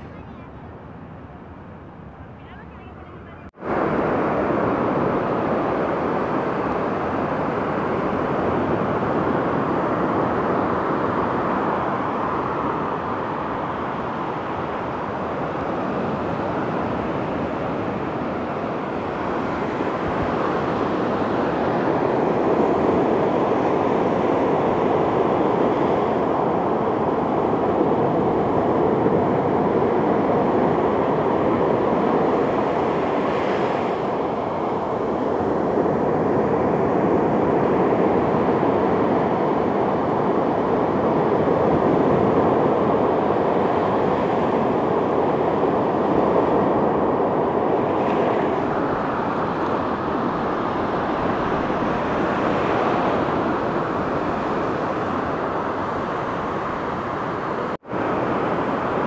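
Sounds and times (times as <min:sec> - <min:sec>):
ocean surf breaking on beach: 0:03.5 - 0:59.0.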